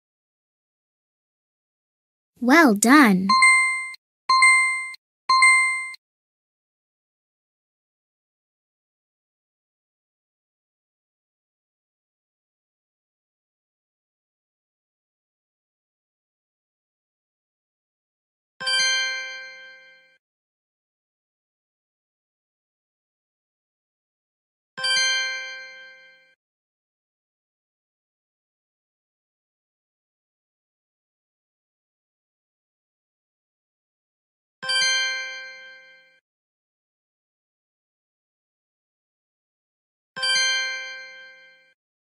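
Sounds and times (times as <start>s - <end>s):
bell-like correct-answer chime: 2.4s - 3.4s.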